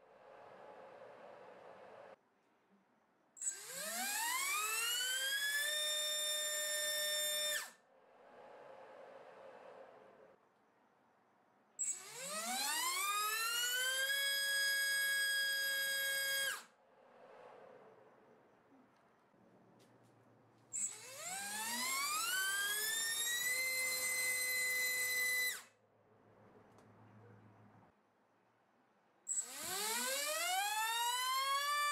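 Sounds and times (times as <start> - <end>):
brushless motor whining: 11.8 - 17.8, 20.8 - 25.7, 29.4 - 31.9.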